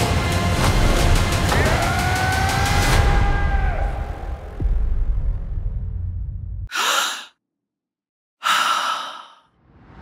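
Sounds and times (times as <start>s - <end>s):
breathy exhalations: 6.7s - 7.4s, 8.4s - 9.5s.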